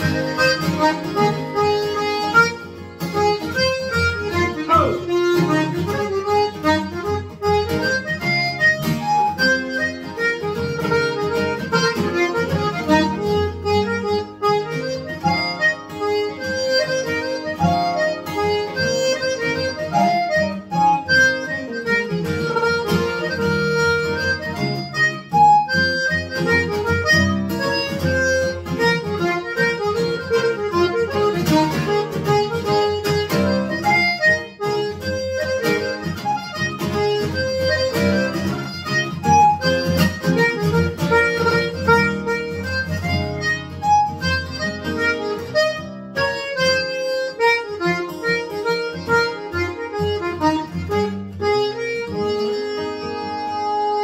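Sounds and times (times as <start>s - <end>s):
acoustic guitar chords: 0.0s - 54.0s
button accordion waltz melody: 0.0s - 54.0s.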